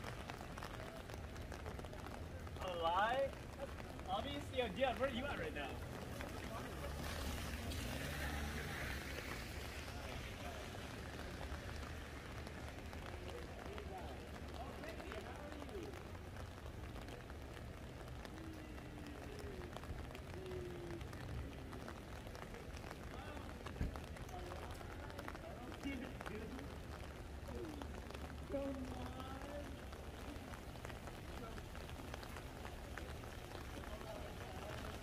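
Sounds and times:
rain on wet street: 0:00.0 - 0:35.0
traffic rumble: 0:00.0 - 0:35.0.

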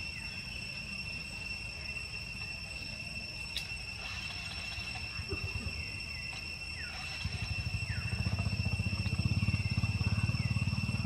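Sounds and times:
insects buzzing: 0:00.0 - 0:11.0
low rapid throbbing: 0:04.0 - 0:11.0.

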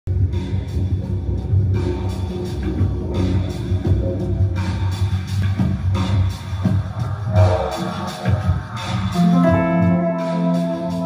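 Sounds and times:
electric guitar: 0:09.2 - 0:11.0.

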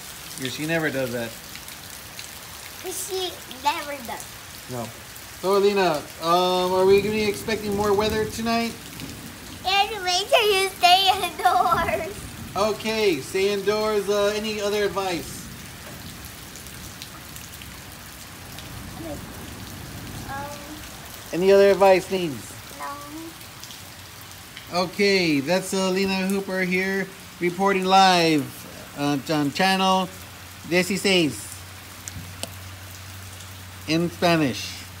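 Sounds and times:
steady rain falling: 0:00.0 - 0:35.0.

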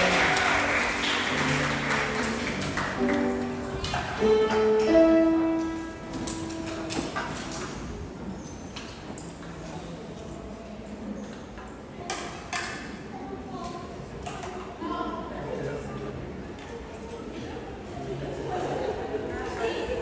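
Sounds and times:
low indistinct voices: 0:01.3 - 0:20.0.

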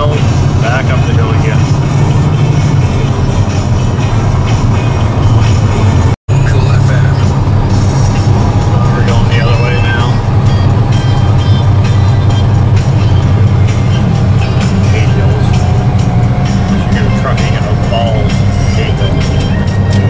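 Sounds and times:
music playing: 0:00.0 - 0:20.0
road noise: 0:00.0 - 0:20.0
truck diesel engine drone: 0:00.0 - 0:20.0.

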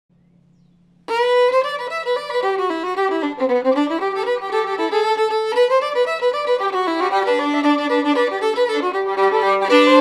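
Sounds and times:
fiddle playing fast tune: 0:01.1 - 0:10.0.

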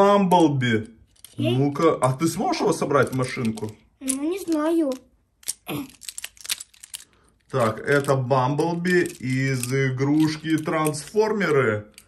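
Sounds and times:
plastic toy parts clicking and rattling: 0:00.7 - 0:12.0.

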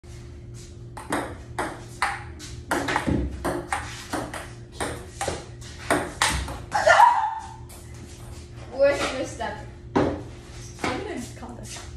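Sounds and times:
ping-pong ball hits: 0:01.0 - 0:07.5.

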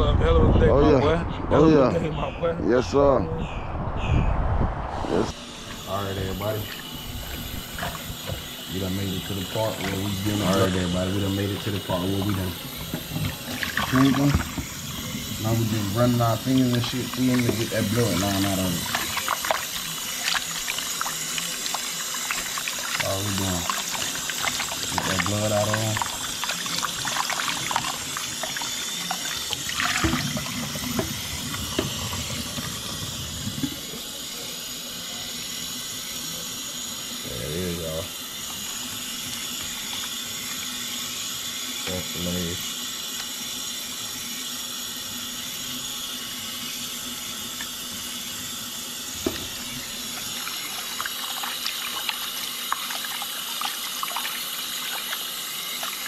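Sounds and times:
faucet running into sink: 0:06.0 - 0:34.2, 0:47.5 - 0:56.0
water splashing: 0:13.1 - 0:15.2, 0:16.5 - 0:33.8, 0:50.1 - 0:56.0.

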